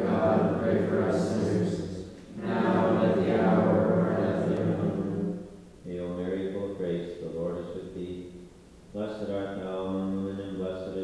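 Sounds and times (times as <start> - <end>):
voices chanting a prayer: 0.0 - 8.2.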